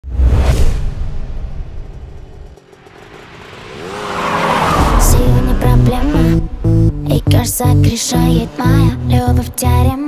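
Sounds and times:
vehicle engine revving: 1.1s - 9.8s
music beat: 4.8s - 9.0s.

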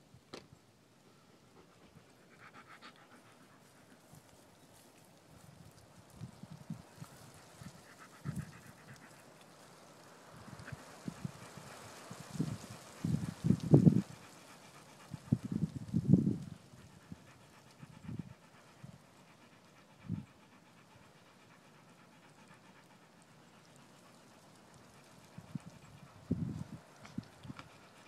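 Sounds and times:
dog panting: 1.2s - 4.9s, 6.3s - 9.6s, 10.4s - 28.0s.

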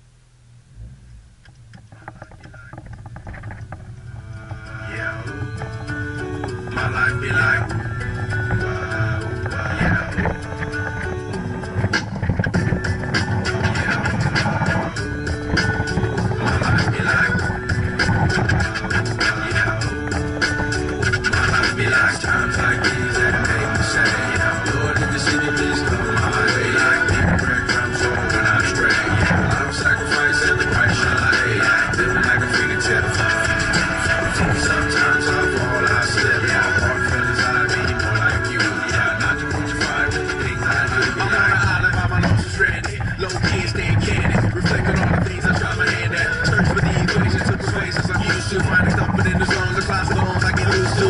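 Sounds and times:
instrumental music with beat: 1.4s - 51.0s.

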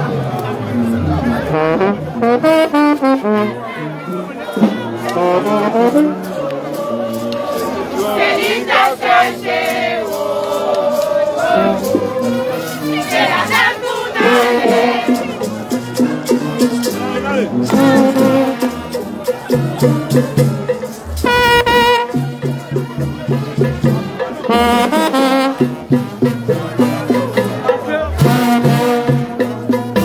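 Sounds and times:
brass horns playing melody: 0.0s - 30.0s
crowd singing and shouting: 0.0s - 30.0s
sousaphone bass line: 21.2s - 22.1s.

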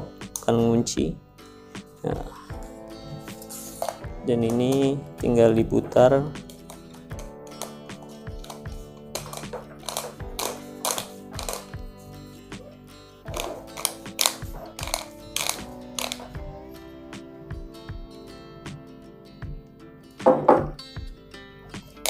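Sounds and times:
background music: 0.0s - 22.0s
plastic cap ratcheting clicks: 6.4s - 11.7s, 13.3s - 16.4s.

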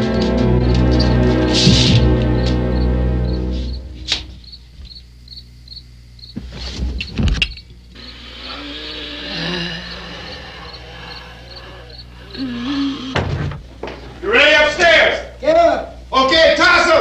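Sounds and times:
crickets chirping: 0.0s - 17.0s.

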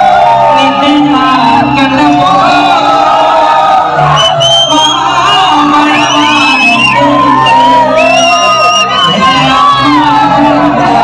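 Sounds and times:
lead singer singing: 4.2s - 11.0s.

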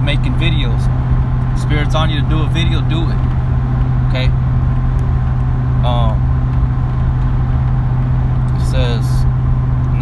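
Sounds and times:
engine drone: 0.0s - 10.0s
road rumble: 0.0s - 10.0s.

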